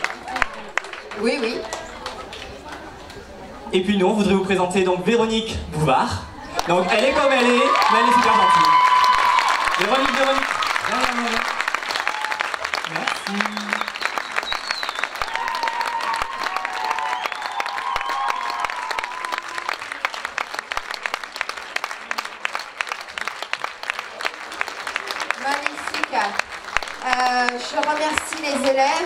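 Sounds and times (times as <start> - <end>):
crowd applauding: 0.0 - 2.9, 6.5 - 29.0.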